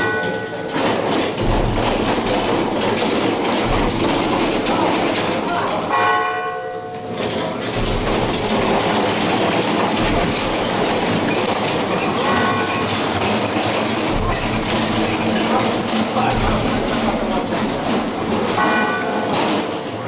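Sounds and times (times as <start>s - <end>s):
procession clattering din: 0.0s - 20.0s.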